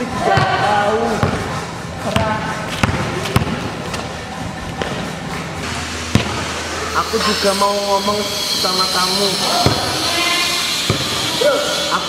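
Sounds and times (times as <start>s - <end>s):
basketball bouncing on hard floor: 10.9s - 11.2s.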